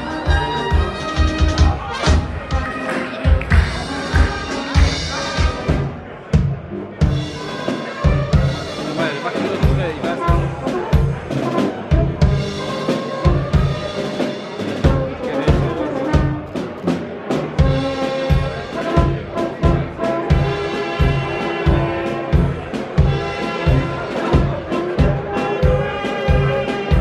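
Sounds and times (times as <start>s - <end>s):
brass playing a tune: 0.0s - 6.1s, 7.2s - 27.0s
bass drum beat: 0.0s - 7.4s, 9.6s - 13.9s, 17.4s - 27.0s.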